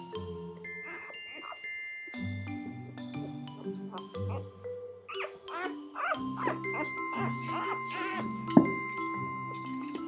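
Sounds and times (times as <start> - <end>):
soft background music: 0.0 - 10.0
puppy squeaking and whimpering: 0.8 - 1.7, 3.8 - 8.5.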